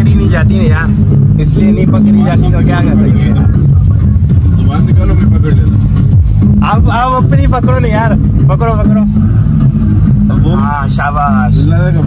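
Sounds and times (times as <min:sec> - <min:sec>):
people talking: 0:00.0 - 0:05.9, 0:06.6 - 0:09.5, 0:10.3 - 0:12.0
car engine and road hum: 0:00.0 - 0:12.0.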